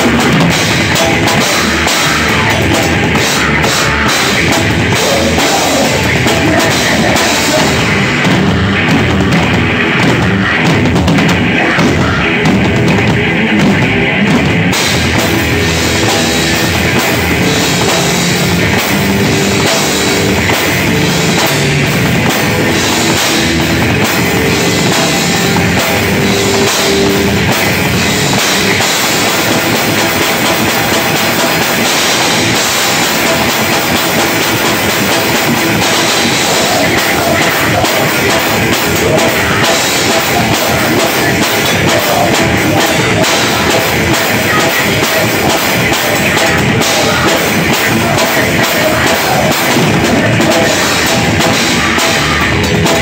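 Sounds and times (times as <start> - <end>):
drum kit: 0.0 - 53.0
live rock band playing: 0.0 - 53.0.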